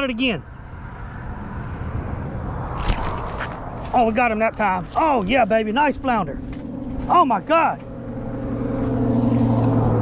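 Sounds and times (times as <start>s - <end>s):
wind rumbling on microphone: 0.0s - 7.2s.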